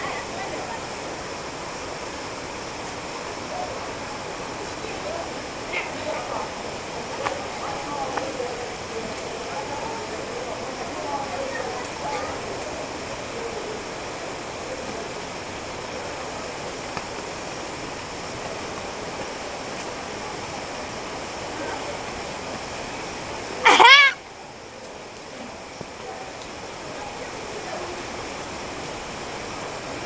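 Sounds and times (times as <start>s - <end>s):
faint distant voices: 0.0s - 30.0s
steady rushing noise: 0.0s - 30.0s
person shouting high-pitched: 23.6s - 24.2s.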